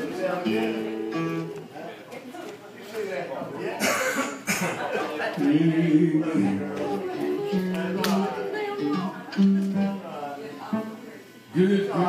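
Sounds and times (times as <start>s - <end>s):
person coughing: 3.8s - 4.8s.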